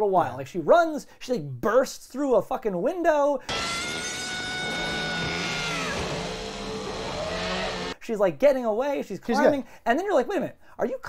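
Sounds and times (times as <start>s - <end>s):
low drone: 3.5s - 8.0s
sliding high tone: 3.5s - 8.0s.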